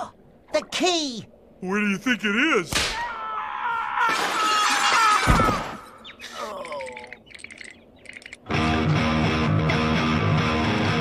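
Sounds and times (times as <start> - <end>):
high tinkling: 6.4 - 8.5
rock music with electric guitar: 8.5 - 11.0.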